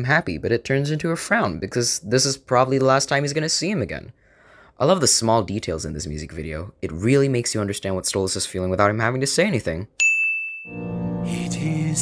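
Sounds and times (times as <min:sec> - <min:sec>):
bell-like ding: 0:10.0 - 0:11.4
music: 0:10.7 - 0:12.0.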